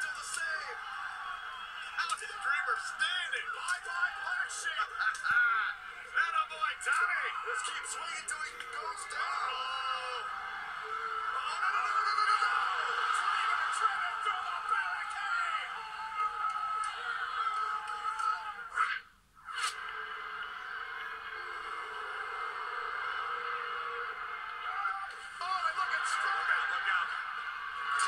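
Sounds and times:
music through tv speaker: 0.0s - 18.6s, 19.5s - 28.0s
arena crowd noise: 0.0s - 28.0s.

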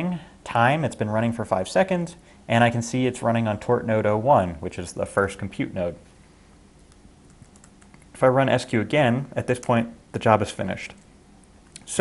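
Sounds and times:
typing on computer keyboard: 7.3s - 8.0s.

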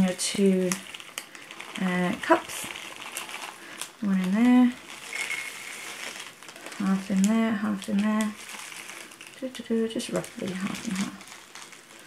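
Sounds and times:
plastic bag crinkling: 0.0s - 12.0s
wax pellets pouring into cup: 0.0s - 12.0s.

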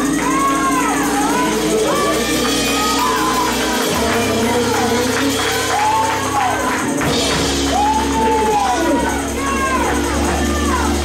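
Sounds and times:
gospel singing: 0.0s - 11.0s
low bass: 0.0s - 11.0s
tambourine: 0.0s - 11.0s.

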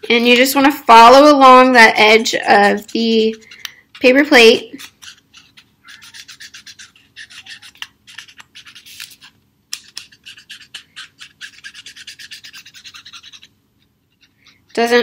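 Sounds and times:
marker scratching on paper plate: 0.0s - 15.0s.

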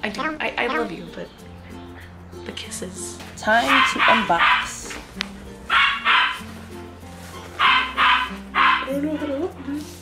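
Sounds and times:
background music with low notes: 0.0s - 10.0s
dog barking: 3.7s - 5.0s, 5.7s - 6.4s, 7.6s - 9.0s.

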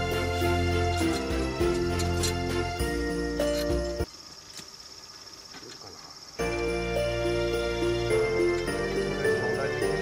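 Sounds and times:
faint outdoor ambience: 0.0s - 10.0s
insect trilling: 3.3s - 10.0s.

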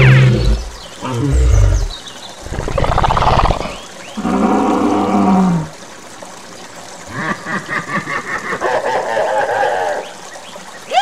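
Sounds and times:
animal roars: 0.0s - 1.9s, 2.5s - 5.7s.

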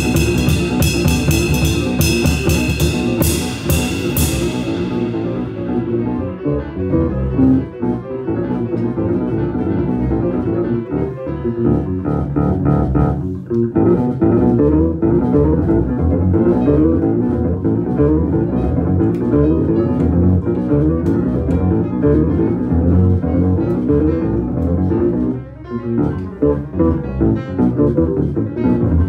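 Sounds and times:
free jazz on plucked basses: 0.0s - 29.0s.

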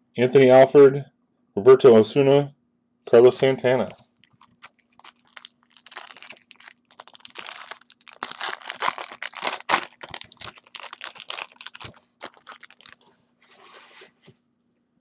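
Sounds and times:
foil wrapper crinkling and tearing: 4.2s - 13.0s.

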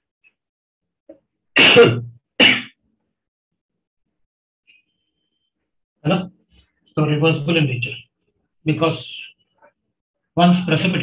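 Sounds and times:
man coughing: 1.6s - 2.8s.

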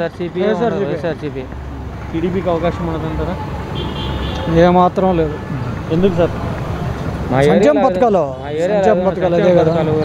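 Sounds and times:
motorbikes and cars passing: 0.0s - 10.0s
man speaking: 2.1s - 3.5s, 4.5s - 6.5s, 7.3s - 10.0s.

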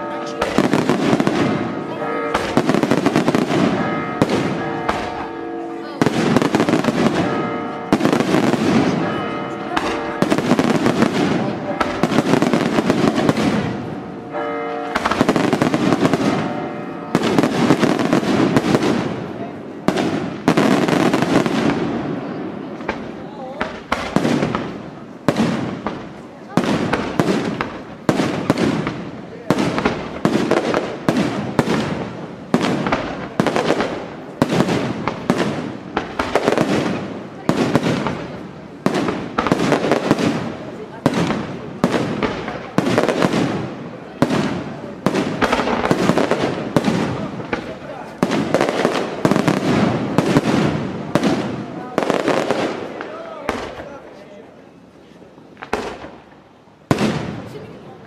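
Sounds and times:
firework shells bursting: 22.8s - 53.9s.

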